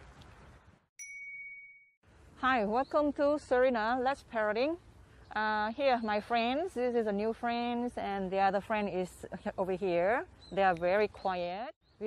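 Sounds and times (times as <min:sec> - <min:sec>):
bright chime ding: 0:01.0 - 0:02.0
faint outdoor background noise: 0:02.0 - 0:12.0.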